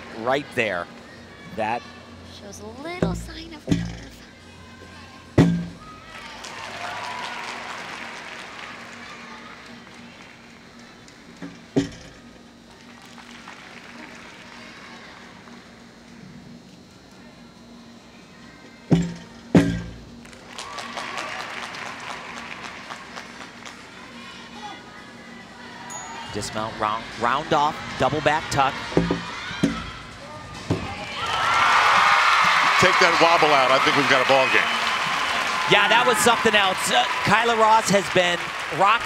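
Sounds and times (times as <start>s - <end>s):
crowd noise: 13.6s - 39.0s.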